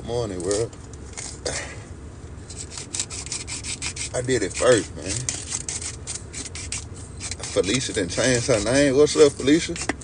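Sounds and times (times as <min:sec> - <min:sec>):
herb grinder rasping: 0:02.5 - 0:10.0.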